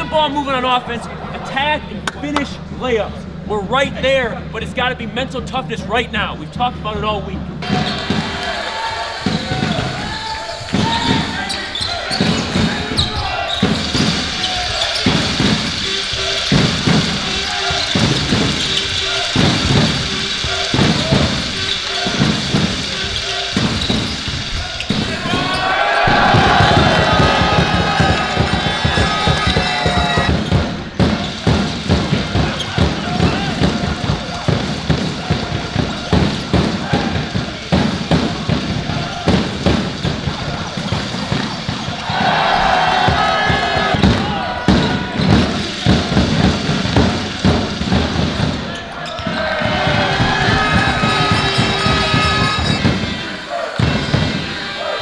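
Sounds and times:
voices calling out: 0:07.6 - 0:55.0
basketball bouncing on hardwood: 0:24.9 - 0:42.0.

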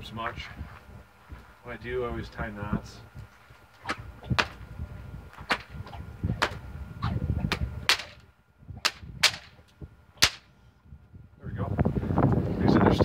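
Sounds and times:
whip cracks: 0:03.8 - 0:04.6, 0:05.4 - 0:05.8, 0:06.4 - 0:08.2, 0:08.8 - 0:09.6, 0:10.2 - 0:10.5.

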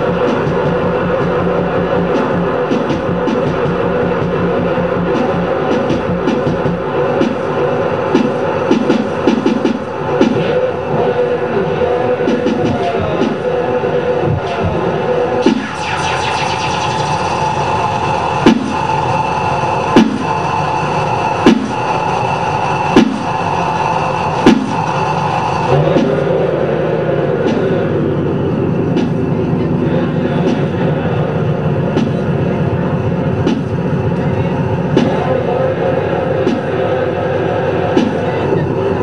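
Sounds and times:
electronic noise and drones: 0:00.0 - 0:39.0.

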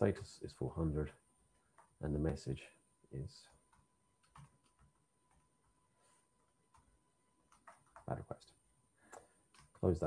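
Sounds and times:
faint keyboard keystrokes: 0:03.5 - 0:05.8, 0:06.4 - 0:08.3, 0:09.1 - 0:10.0.

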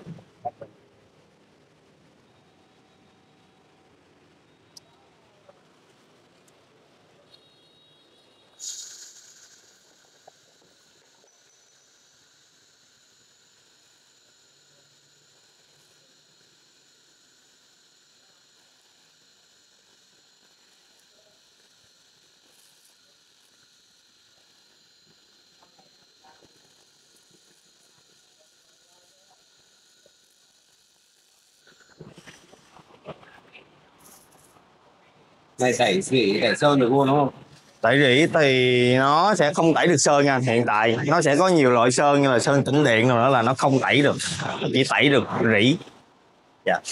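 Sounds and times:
laser welder hiss and whine: 0:00.0 - 0:46.9.

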